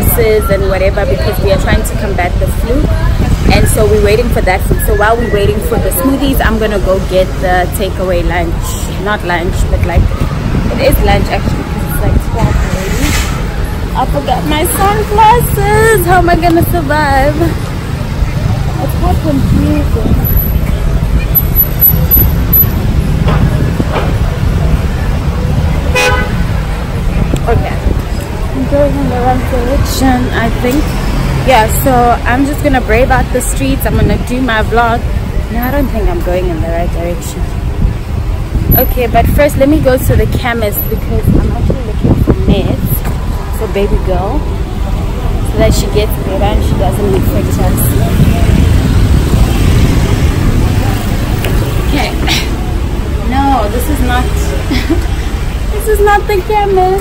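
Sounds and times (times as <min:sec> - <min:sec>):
street traffic rumble: 0:00.0 - 0:57.0
wind buffeting microphone: 0:00.0 - 0:57.0
vehicle horn toot: 0:25.9 - 0:26.5.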